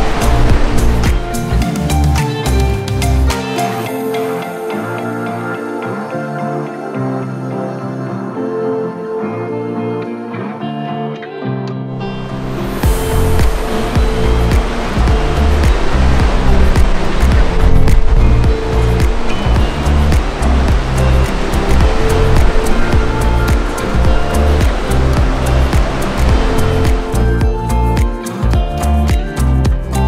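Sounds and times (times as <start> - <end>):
churning sea water rushing: 0.0 - 5.3, 12.0 - 28.5
background music: 0.0 - 30.0.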